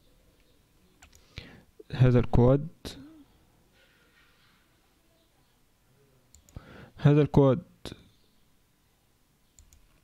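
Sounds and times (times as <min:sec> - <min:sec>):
faint computer mouse clicks: 0:00.4 - 0:01.3, 0:06.3 - 0:06.6, 0:09.6 - 0:10.0.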